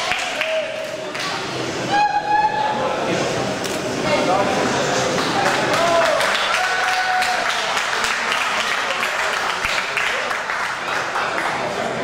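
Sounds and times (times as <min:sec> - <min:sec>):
hall chatter: 0:00.0 - 0:12.0.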